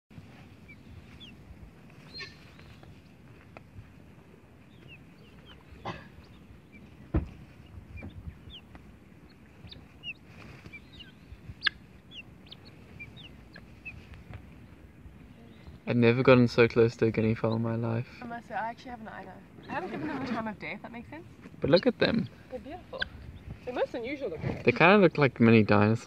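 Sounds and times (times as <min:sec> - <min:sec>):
guineafowl calling: 0:02.0 - 0:02.9, 0:04.7 - 0:14.2, 0:21.6 - 0:24.1.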